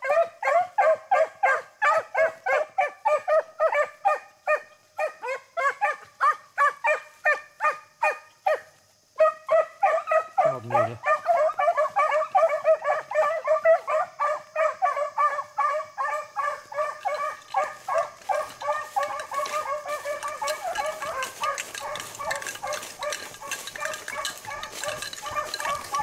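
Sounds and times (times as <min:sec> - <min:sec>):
hounds baying: 0:00.0 - 0:26.0
brush rustling: 0:16.4 - 0:26.0.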